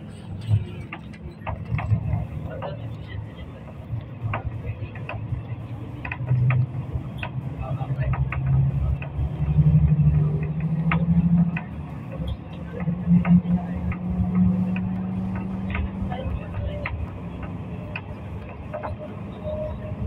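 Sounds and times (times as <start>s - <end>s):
vehicle engine rumbling: 0.0s - 20.0s.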